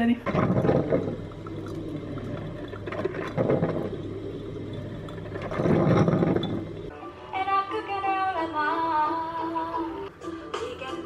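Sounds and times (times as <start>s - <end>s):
coffee maker humming: 0.0s - 6.9s
coffee running into carafe: 0.2s - 6.9s.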